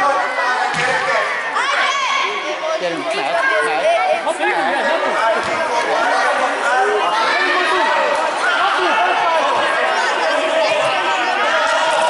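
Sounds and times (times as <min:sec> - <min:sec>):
children chattering in hall: 0:00.0 - 0:12.0.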